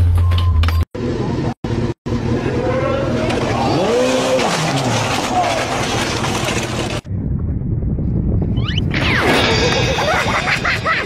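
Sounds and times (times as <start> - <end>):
motorcycle engine revving: 1.0 - 7.1.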